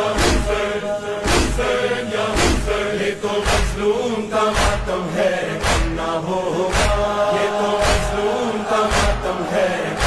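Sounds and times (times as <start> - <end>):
men chanting: 0.0 - 10.0
chest-beating thuds: 1.2 - 1.6, 2.4 - 2.7.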